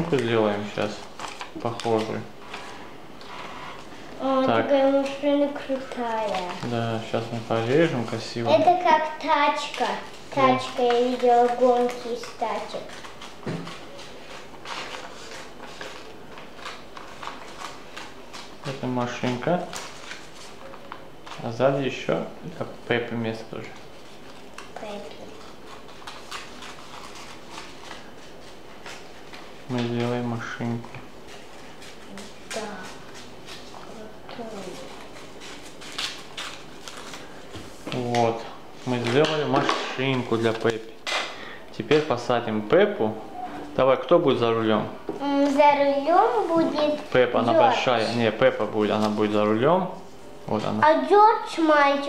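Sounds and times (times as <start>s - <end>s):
paper rustling and clicking: 0.0s - 3.9s, 4.8s - 6.8s, 8.1s - 21.6s, 23.7s - 41.3s
person speaking: 41.8s - 52.0s.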